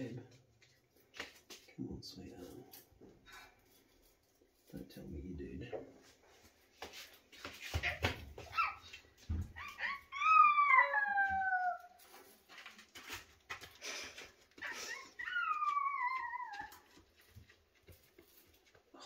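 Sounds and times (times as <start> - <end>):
faint clicks and rustles: 0.2 - 19.0
animal wailing calls: 9.6 - 11.9, 14.6 - 16.9.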